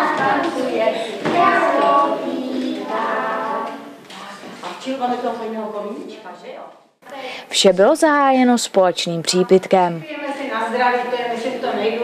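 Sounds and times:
children singing together: 0.0 - 4.0.

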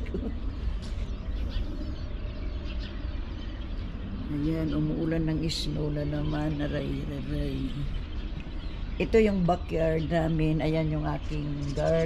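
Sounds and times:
faint bird chirps: 0.0 - 12.0
steady low rumble: 0.0 - 12.0.

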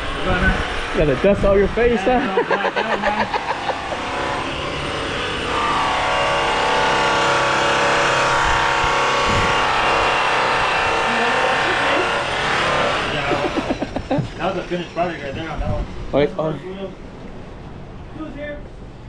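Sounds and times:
electric wheel polisher whining: 2.2 - 14.1.

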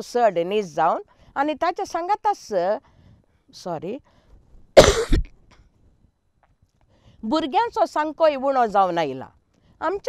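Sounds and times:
woman coughing: 4.8 - 5.3.

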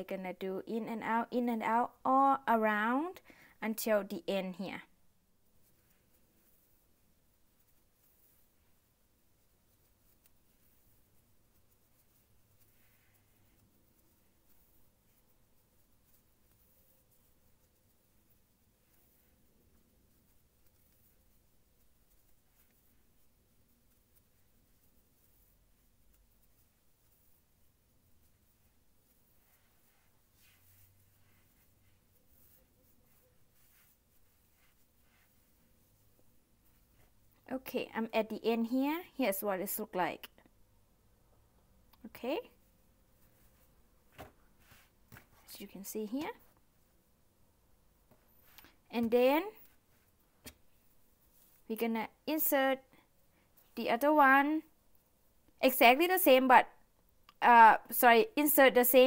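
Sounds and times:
yarn rustling: 0.0 - 56.4.

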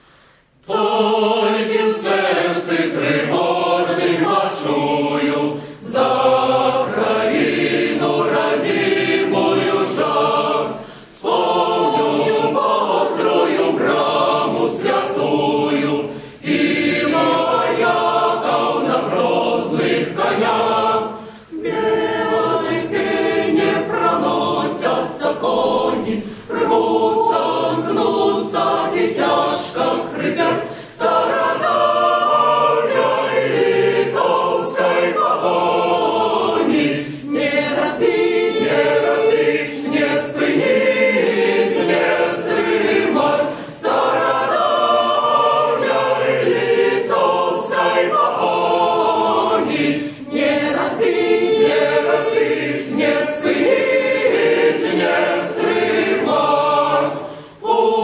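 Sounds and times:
choir singing unaccompanied: 0.6 - 58.0.

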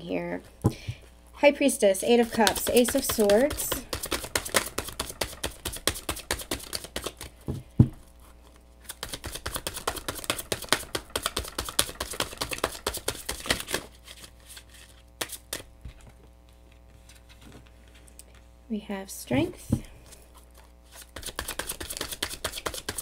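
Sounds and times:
cards being shuffled: 2.3 - 7.4, 8.2 - 16.1, 20.0 - 23.0
cards tapping: 2.3 - 8.0, 8.9 - 13.9, 21.1 - 23.0.

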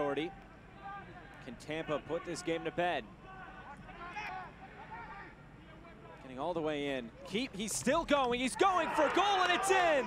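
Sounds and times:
stadium background noise: 0.0 - 10.0.

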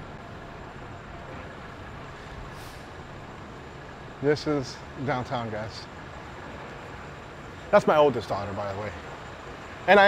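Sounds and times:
faint hiss: 0.0 - 10.0
vehicle engine hum: 0.0 - 10.0.

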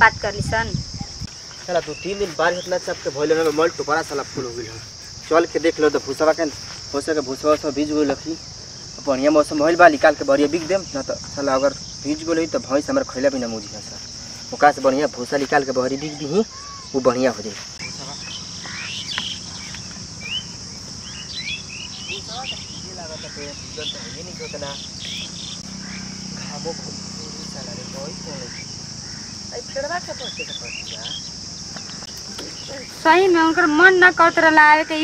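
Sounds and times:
crickets droning: 0.0 - 35.0.

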